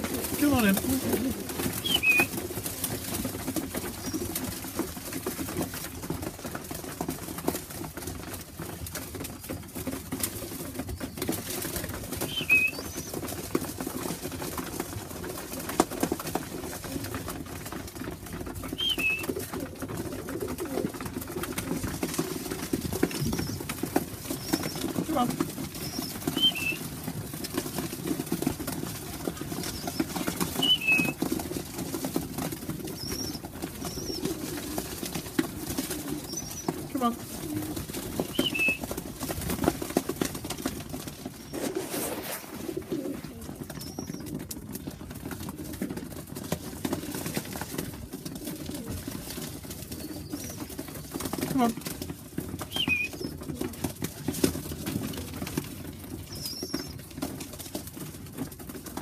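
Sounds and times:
pigeons cooing: 0.0 - 6.6, 9.2 - 46.0, 46.8 - 57.3
brief rustle: 41.4 - 43.1.

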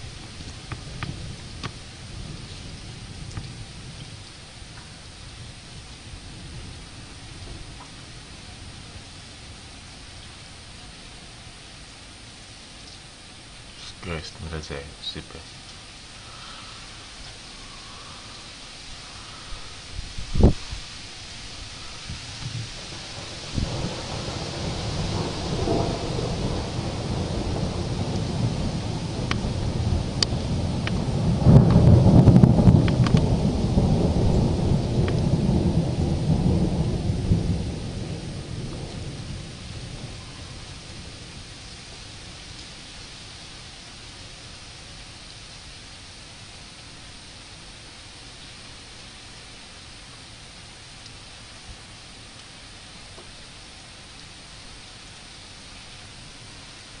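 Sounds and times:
thunder rumbling: 0.0 - 11.1, 13.6 - 44.8
rain hiss: 0.0 - 57.0.

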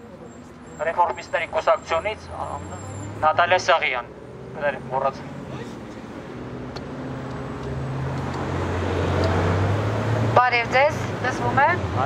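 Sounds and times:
road traffic engine hum: 0.0 - 12.0.

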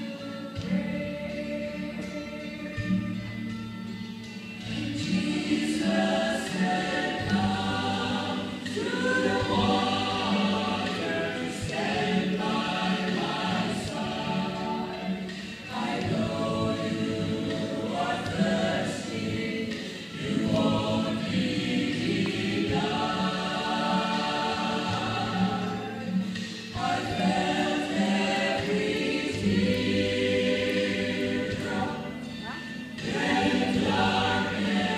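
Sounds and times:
women singing together: 0.0 - 3.0, 4.6 - 34.9
low instrumental accompaniment: 0.0 - 34.9.

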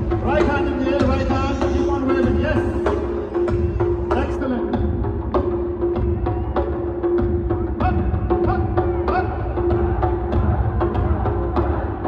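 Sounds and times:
live band music over loudspeakers: 0.0 - 12.0
steady drum beat: 0.0 - 12.0.

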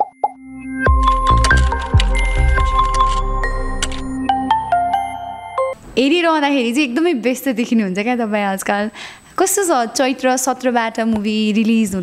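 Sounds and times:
music with deep hits: 0.8 - 5.8.

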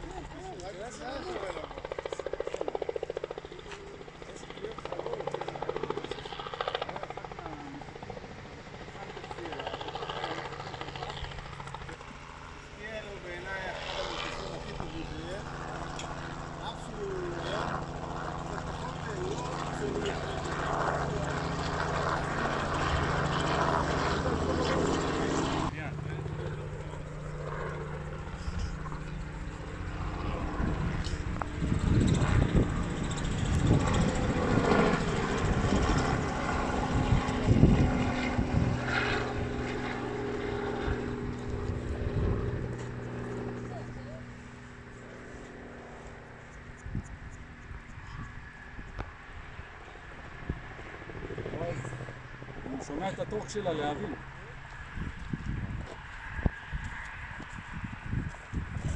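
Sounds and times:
model helicopter motor and rotor drone: 0.0 - 58.9
gusty low rumbling: 28.1 - 43.6, 54.8 - 58.9.

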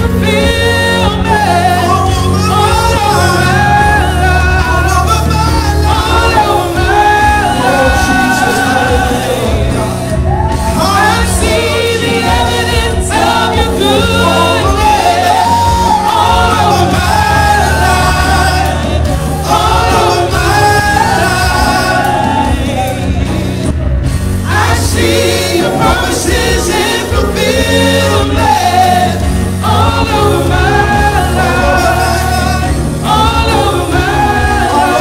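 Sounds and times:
man and women singing gospel: 0.0 - 35.0
musical accompaniment: 0.0 - 35.0.

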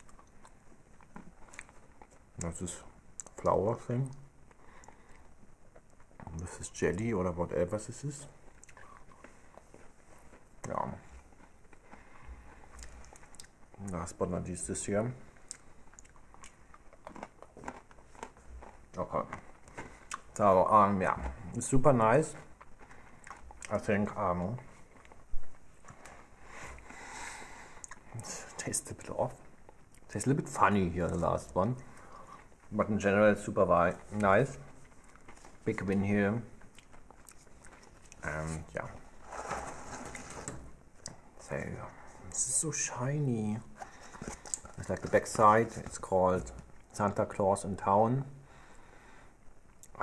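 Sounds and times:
person chewing crunchy cookie: 0.0 - 3.5, 8.4 - 14.0, 15.2 - 20.4, 22.3 - 28.6, 34.0 - 39.2, 43.8 - 46.9
foil rustling and crinkling: 43.7 - 46.8.

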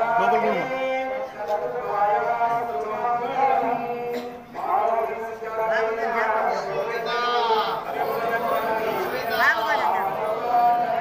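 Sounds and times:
priest chanting into a microphone: 0.0 - 11.0.

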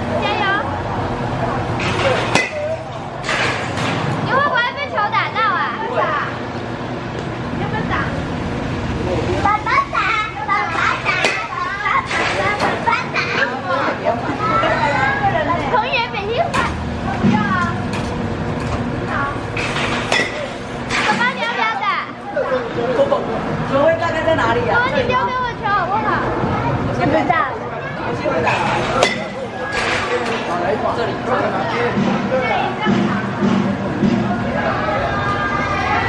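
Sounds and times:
children chattering: 0.0 - 3.2, 4.2 - 6.8, 9.0 - 17.9, 18.8 - 36.0
bat striking ball crack: 1.8 - 4.0, 11.2 - 12.7, 28.9 - 30.4.

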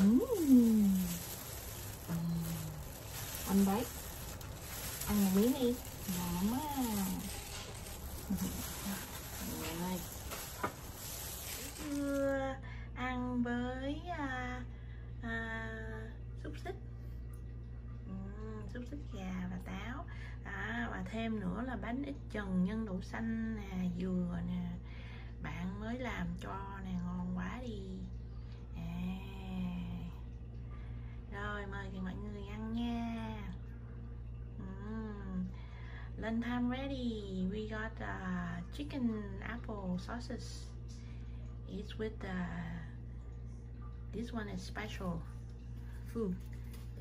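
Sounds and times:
steady low hum: 0.0 - 47.0
woman humming mmm: 2.1 - 2.9.

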